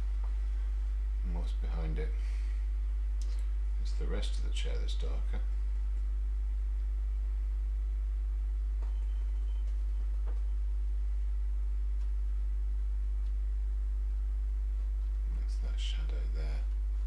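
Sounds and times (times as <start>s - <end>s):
faint steady tones: 0.0s - 17.0s
steady low hum: 0.0s - 17.0s
faint clicks: 3.2s - 3.5s.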